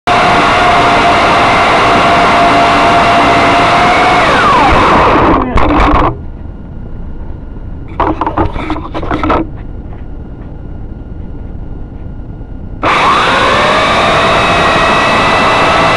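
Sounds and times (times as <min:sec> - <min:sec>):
drone motors whining: 0:00.1 - 0:15.9.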